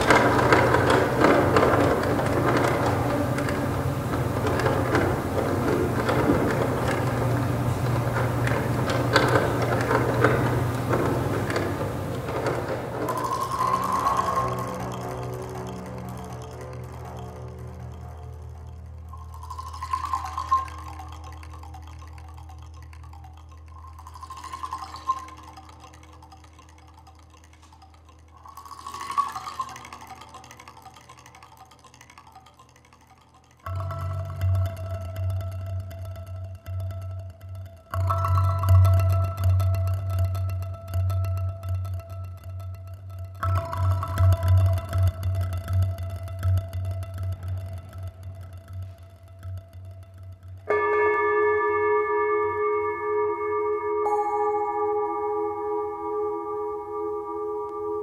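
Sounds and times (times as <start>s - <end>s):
low steady drone: 0.0s - 58.0s.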